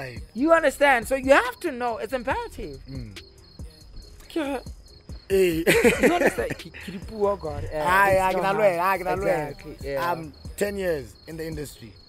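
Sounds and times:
person's voice: 0.0 - 3.2, 5.3 - 11.8
crickets chirping: 0.0 - 12.0.

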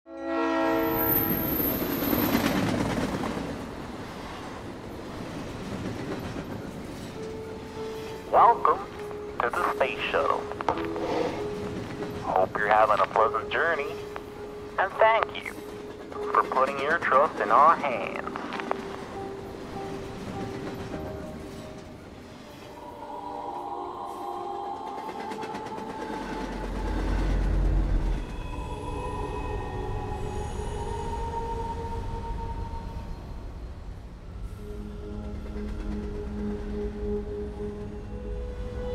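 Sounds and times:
train horn chord: 0.1 - 1.8
moving train running noise: 0.1 - 38.9
soft sustained music tones: 4.8 - 38.9.

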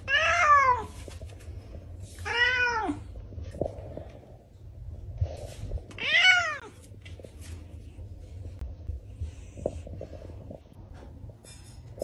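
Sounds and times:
low rumble: 3.0 - 6.0, 6.7 - 12.0.

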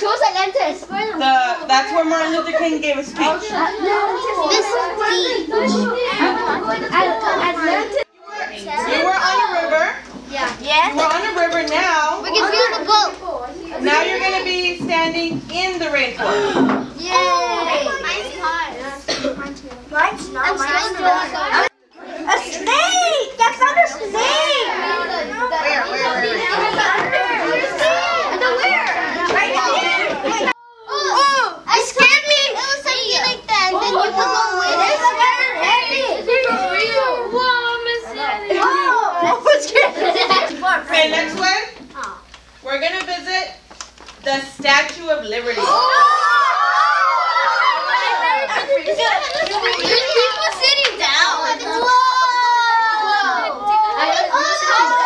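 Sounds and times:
young children chattering: 0.0 - 43.9, 44.9 - 55.0.

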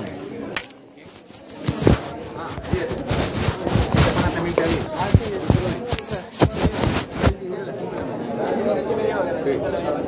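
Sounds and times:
camera handling bumps and rubbing: 1.1 - 7.4.

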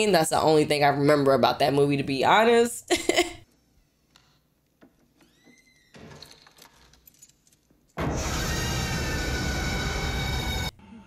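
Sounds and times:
horror jump-scare music sting: 8.0 - 11.0.

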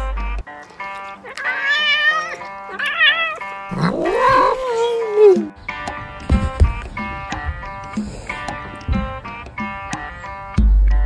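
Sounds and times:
background music: 0.0 - 11.0
cat meowing: 1.1 - 5.5.

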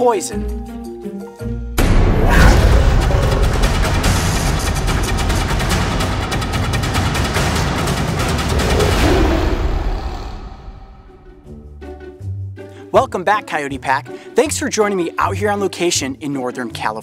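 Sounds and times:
theme music with rapid drums: 1.8 - 16.4.

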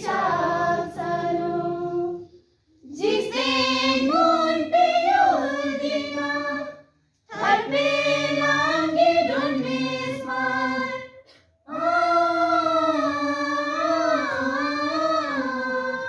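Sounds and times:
group singing in unison: 0.0 - 16.0.

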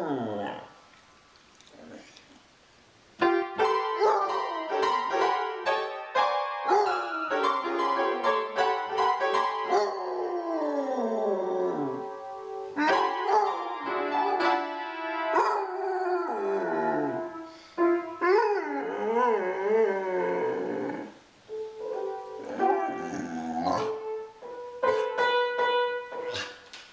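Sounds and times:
puppy whining and howling: 0.0 - 0.7, 4.0 - 5.3, 9.6 - 12.1, 15.4 - 17.5, 18.2 - 21.2, 22.4 - 24.0
music with piano notes: 3.2 - 20.4, 21.4 - 26.9.

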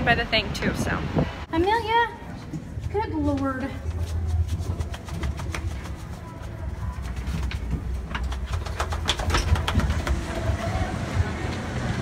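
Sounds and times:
low rumble of wind: 0.0 - 5.0
footsteps: 1.6 - 12.0.

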